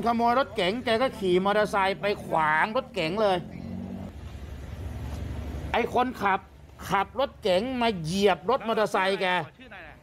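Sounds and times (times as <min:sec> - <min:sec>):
vehicle engine rumbling: 0:00.0 - 0:10.0.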